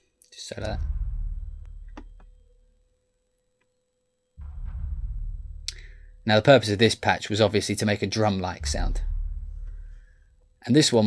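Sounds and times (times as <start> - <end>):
deep sub-bass boom: 0.6 - 2.5, 4.4 - 6.5, 8.6 - 10.6.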